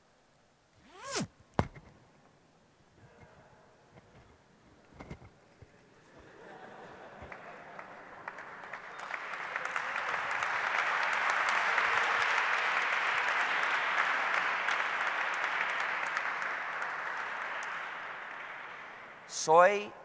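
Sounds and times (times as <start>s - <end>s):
audience applauding: 6.5s - 19.5s.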